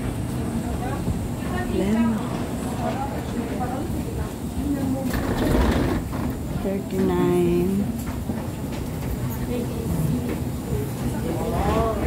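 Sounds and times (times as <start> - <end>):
passengers chattering: 0.0 - 12.0
wheeled suitcases rolling: 0.8 - 12.0.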